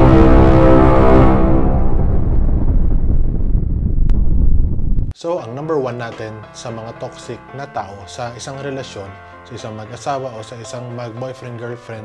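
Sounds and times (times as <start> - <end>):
music chord: 0.0 - 2.2
deep rumbling explosion effect: 0.0 - 5.1.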